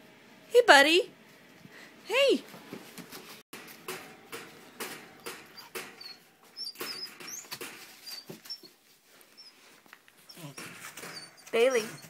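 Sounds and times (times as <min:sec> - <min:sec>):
wire crate clicks and rustling: 0:03.6 - 0:06.2
puppy whimpering: 0:10.2 - 0:12.0.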